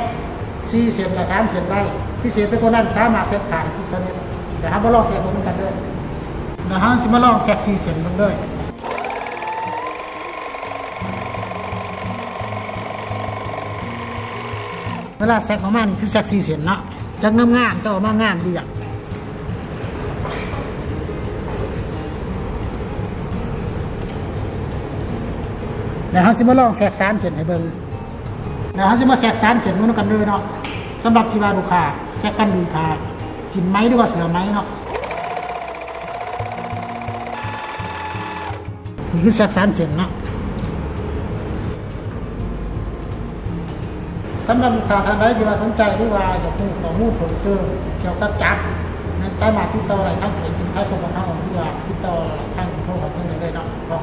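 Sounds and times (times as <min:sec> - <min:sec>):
overlock machine motor whine: 0:08.8 - 0:15.2, 0:34.9 - 0:38.8.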